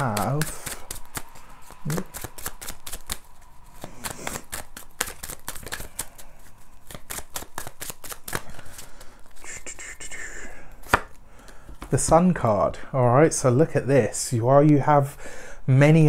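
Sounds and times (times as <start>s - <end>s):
cards being shuffled: 0.0s - 9.5s, 10.8s - 12.0s.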